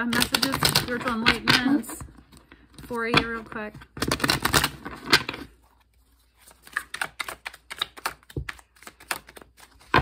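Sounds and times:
cards clicking as shuffled by hand: 0.0 - 2.5, 3.2 - 5.5, 6.4 - 10.0
cards riffle-shuffled: 3.4 - 10.0.

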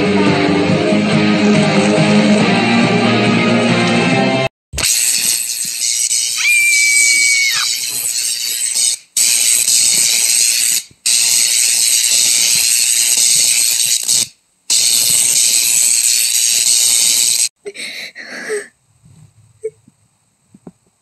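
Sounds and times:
harsh loud hissing: 6.4 - 8.0.

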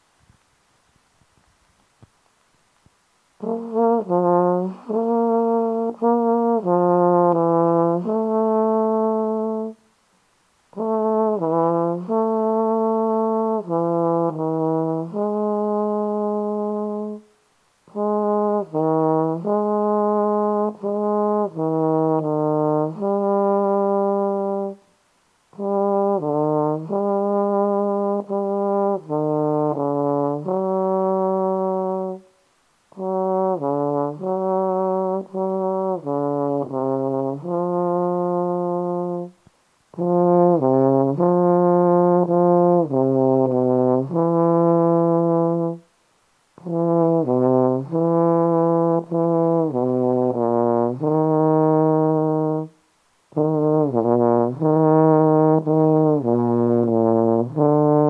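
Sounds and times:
low brass instrument melody: 3.4 - 9.9, 10.7 - 17.3, 17.9 - 24.9, 25.5 - 32.3, 32.9 - 45.9, 46.6 - 58.0.

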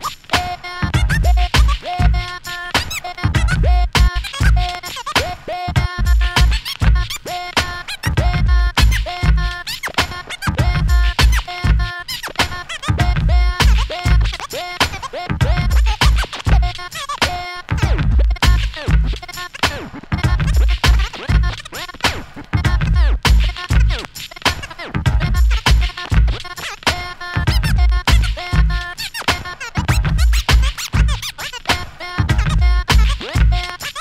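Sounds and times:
hip hop beat: 0.0 - 34.0
record scratching: 0.0 - 34.0.

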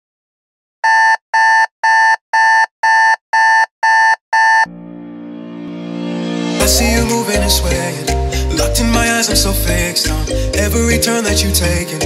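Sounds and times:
alarm clock beeping: 0.8 - 4.7
sustained musical chord: 4.7 - 12.0.

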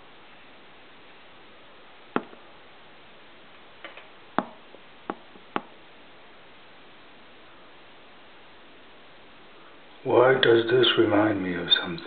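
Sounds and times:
steady low hiss: 0.0 - 12.0
short sharp taps: 3.9 - 5.8.

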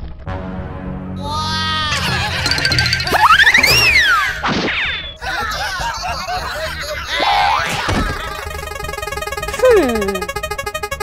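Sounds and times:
background music: 0.0 - 4.6, 8.4 - 11.0.

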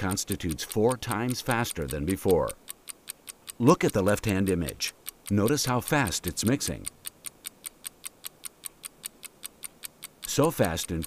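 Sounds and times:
fast clock-like ticking: 0.0 - 11.0.

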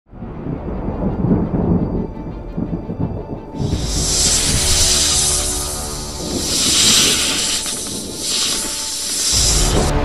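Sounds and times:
deep thunder rumble: 0.1 - 8.5
music: 0.1 - 10.0
loud hiss: 3.6 - 10.0.

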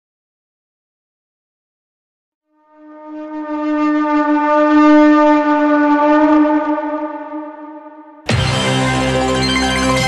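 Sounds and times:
long horn note: 2.5 - 9.0.

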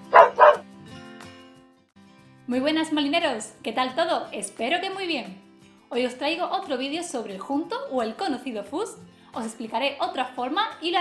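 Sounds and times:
dog barking: 0.0 - 0.6.

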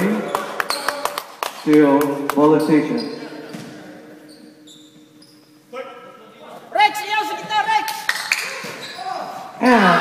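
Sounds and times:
sneakers squeaking on court: 2.6 - 5.7, 8.1 - 9.5.

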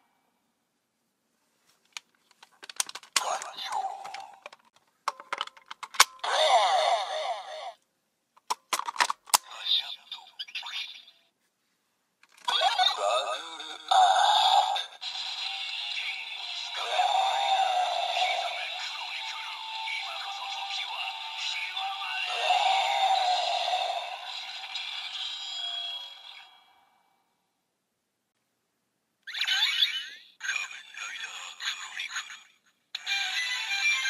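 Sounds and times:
recorded voice lines: 3.1 - 4.6, 9.3 - 11.2, 12.4 - 15.0, 15.6 - 26.0, 30.4 - 34.0
game-style music from toy speaker: 15.0 - 26.5, 29.3 - 34.0.

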